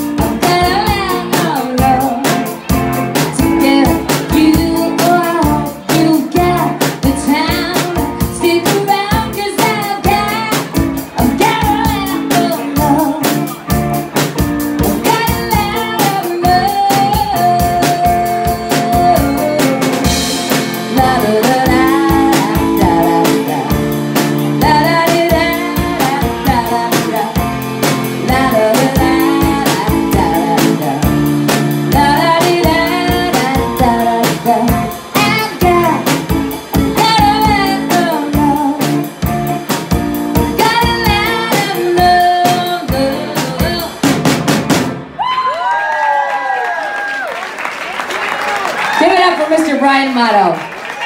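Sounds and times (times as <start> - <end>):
woman singing into a microphone: 0.0 - 2.6, 3.3 - 13.4, 15.0 - 23.9, 24.5 - 31.3, 31.9 - 39.1, 40.5 - 44.0
drum kit beats: 0.0 - 45.7
electric guitar: 0.0 - 45.7
people cheering woo calls: 45.2 - 49.2.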